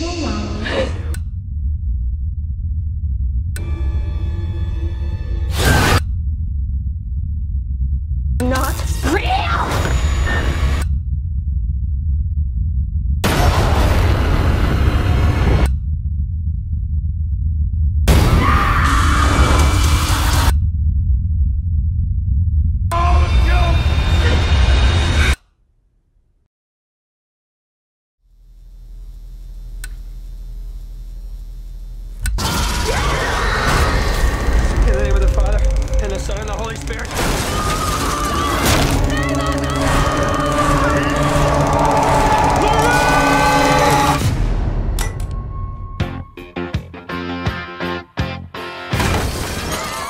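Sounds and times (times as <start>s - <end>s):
deep low rumble: 0.0s - 25.2s, 28.3s - 32.5s
trailer music: 0.0s - 25.6s, 32.1s - 49.7s
wavering voices: 38.0s - 44.2s.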